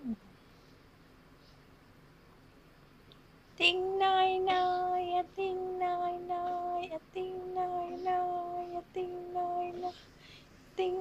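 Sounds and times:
girl singing held notes: 3.6s - 10.1s, 10.8s - 11.0s.

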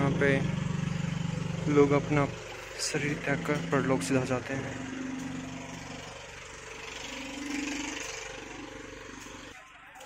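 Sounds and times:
motor engine running: 0.0s - 10.0s.

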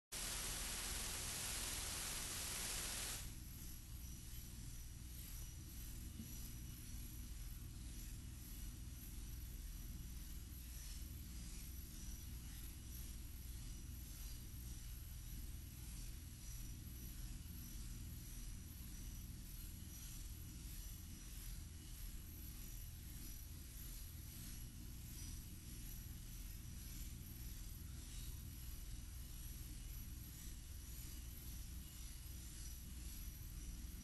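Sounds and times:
low hum and hiss: 0.1s - 34.0s.

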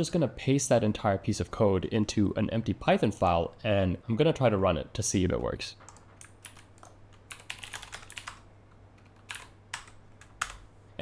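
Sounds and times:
typing on computer keyboard: 5.8s - 8.4s, 9.0s - 10.7s.

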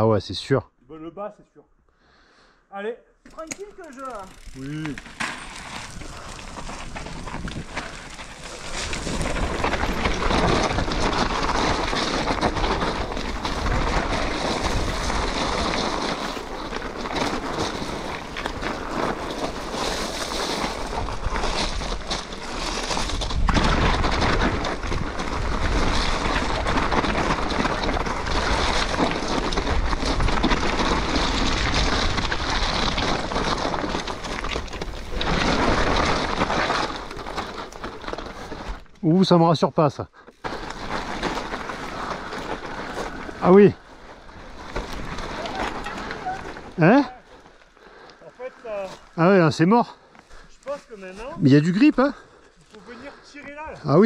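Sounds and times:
bike tyre noise: 3.2s - 54.0s
bike rattling over bumps: 3.3s - 39.6s, 40.3s - 54.0s.

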